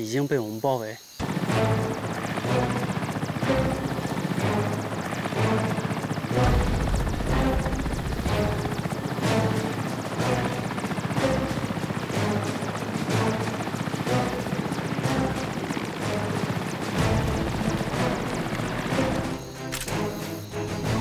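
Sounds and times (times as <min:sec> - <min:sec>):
helicopter rotor chopping: 0:01.2 - 0:21.0
music playing: 0:01.2 - 0:21.0.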